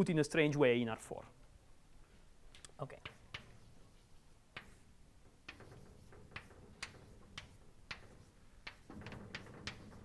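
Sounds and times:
chalk tapping on blackboard: 3.0 - 10.0.

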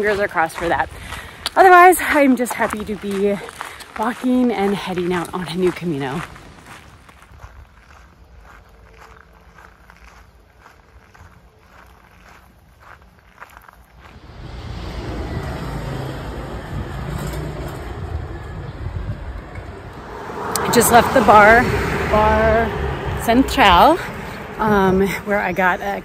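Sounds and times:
faint footsteps: 0.0 - 14.8
vehicle passing on street: 13.9 - 26.0.

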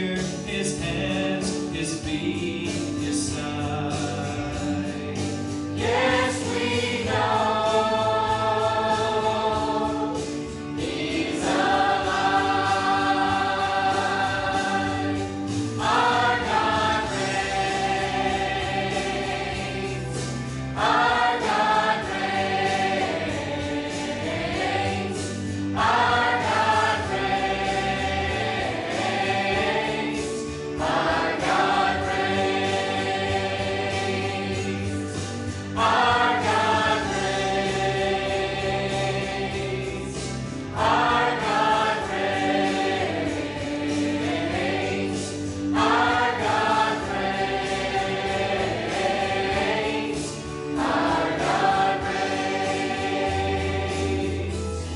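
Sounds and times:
church choir singing gospel: 0.0 - 54.9.

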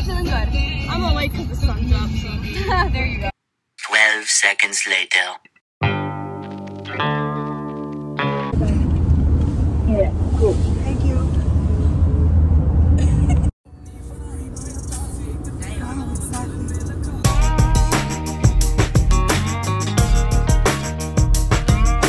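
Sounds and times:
car cabin road noise: 8.5 - 17.3.

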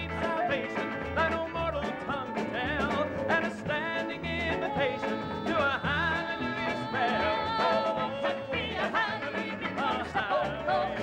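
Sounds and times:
band accompaniment: 0.0 - 11.0.

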